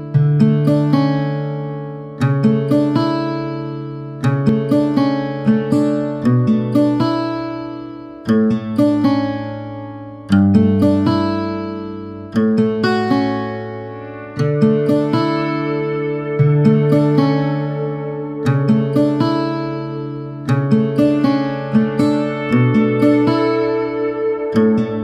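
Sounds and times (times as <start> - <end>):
plucked acoustic guitar: 0.0 - 25.0.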